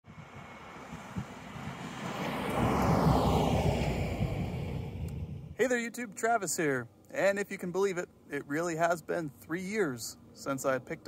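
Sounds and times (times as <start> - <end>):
pickup truck driving past: 0.1 - 5.6.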